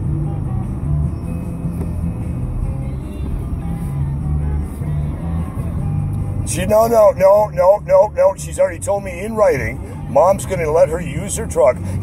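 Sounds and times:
car cabin rumble: 0:00.0 - 0:12.0
quiet music with bass: 0:00.0 - 0:12.0.

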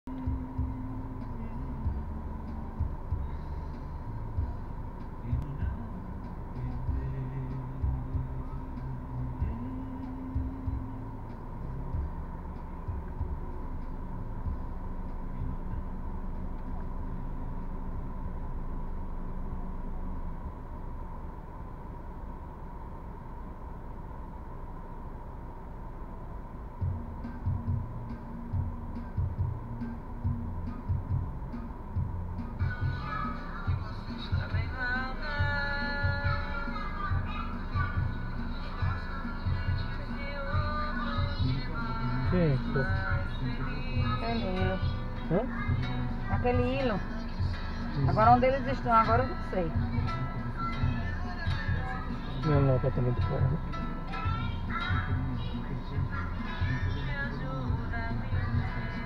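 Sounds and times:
muffled car radio music: 0:00.1 - 0:59.0.

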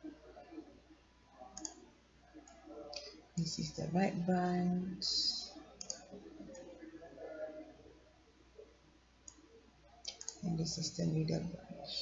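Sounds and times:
computer mouse clicks: 0:01.6 - 0:01.8, 0:05.8 - 0:06.7, 0:09.2 - 0:09.4, 0:10.0 - 0:10.5.

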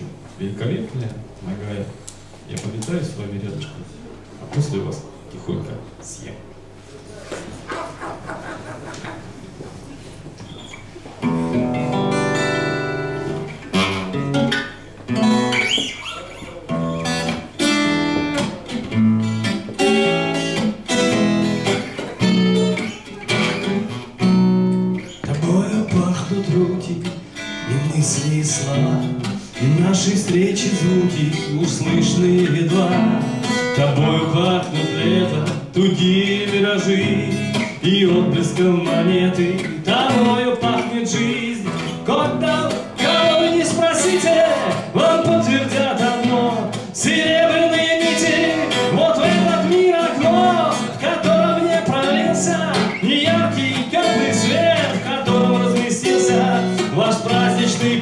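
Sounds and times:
acoustic guitar strumming rhythm: 0:07.4 - 0:58.0.

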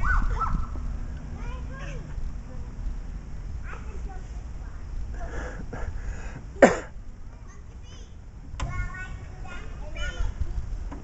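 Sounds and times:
children's voices and chatter: 0:00.0 - 0:11.0.

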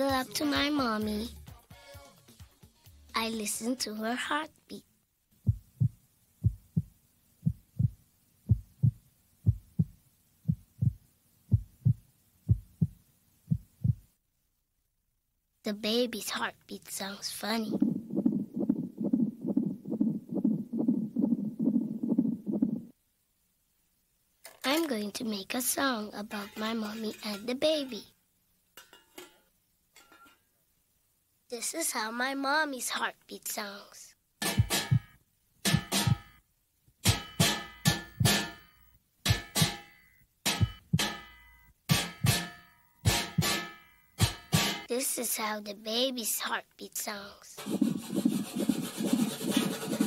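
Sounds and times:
fast fetal heartbeat: 0:05.4 - 0:14.1, 0:17.7 - 0:22.9, 0:34.6 - 0:35.1, 0:47.6 - 0:50.0
plucked string instrument notes: 0:37.0 - 0:44.9.

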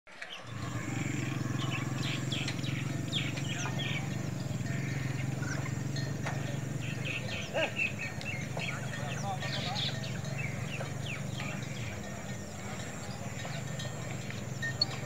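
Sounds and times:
birds chirping and calling: 0:00.1 - 0:15.0.

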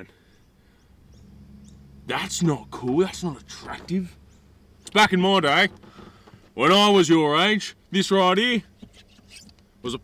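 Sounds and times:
rising bird chirps: 0:00.0 - 0:04.9
low steady hum: 0:00.0 - 0:09.9.

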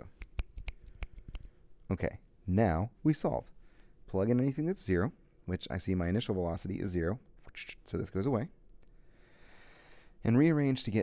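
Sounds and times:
finger snaps: 0:00.0 - 0:01.6.

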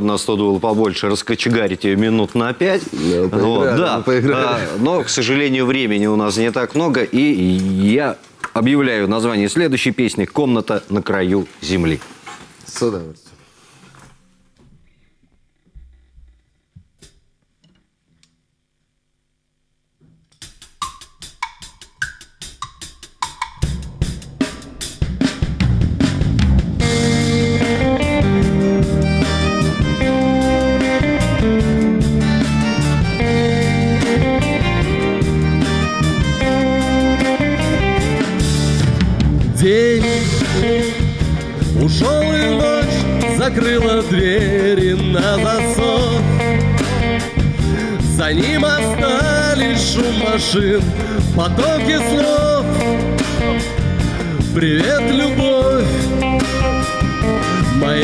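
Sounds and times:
drum kit: 0:20.4 - 0:58.0
live band playing: 0:21.6 - 0:58.0
acoustic guitar: 0:26.8 - 0:58.0.

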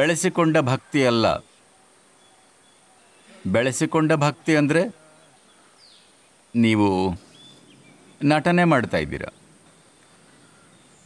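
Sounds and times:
man talking: 0:00.0 - 0:01.5, 0:03.3 - 0:05.0, 0:06.5 - 0:07.3, 0:08.2 - 0:09.4
faint outdoor background: 0:00.0 - 0:11.0
falling bird chirp: 0:00.0 - 0:11.0.

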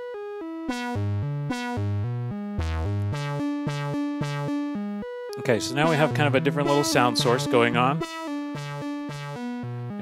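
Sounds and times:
synthesizer random note sequence: 0:00.0 - 0:10.0.

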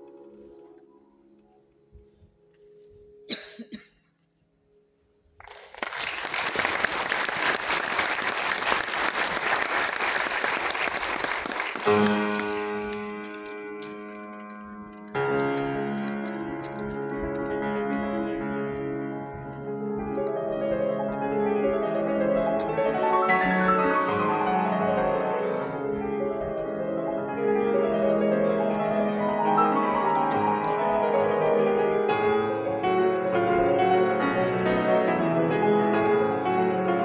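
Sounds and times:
grand piano chords: 0:00.0 - 0:05.4, 0:11.4 - 0:37.0
audience applause: 0:05.4 - 0:14.4.

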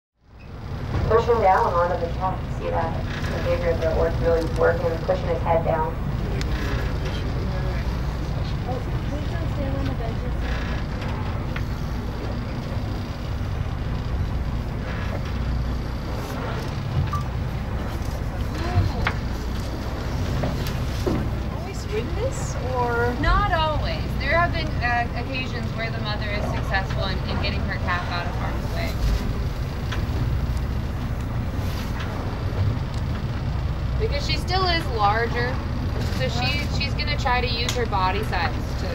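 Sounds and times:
boat engine rumbling: 0:00.2 - 0:38.9.

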